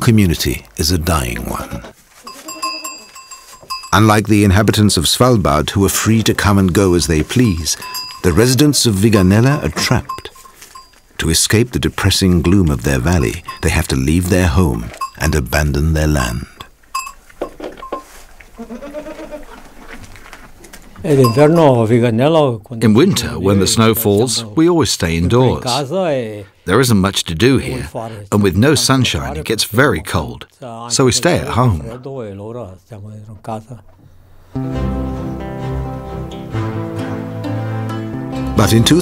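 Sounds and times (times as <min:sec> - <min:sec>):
goat bleating: 0:01.4 - 0:03.3, 0:18.6 - 0:19.6
goat bells clinking: 0:02.2 - 0:05.0, 0:05.9 - 0:18.2, 0:21.0 - 0:21.9.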